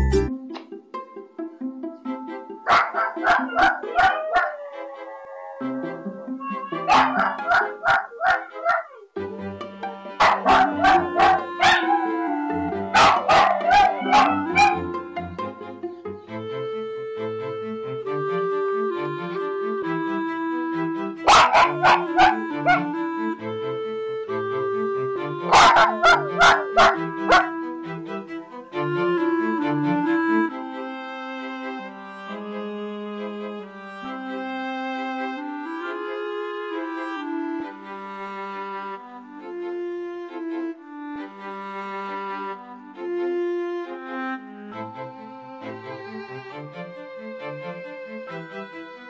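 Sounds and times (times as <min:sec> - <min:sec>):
background music: 0:00.0 - 0:49.0
small dogs barking: 0:02.7 - 0:05.8, 0:06.6 - 0:09.0, 0:10.2 - 0:14.9, 0:21.3 - 0:22.9, 0:25.5 - 0:27.6
dogs howling cries: 0:02.7 - 0:09.0, 0:10.2 - 0:15.0, 0:21.3 - 0:22.9, 0:25.4 - 0:27.5.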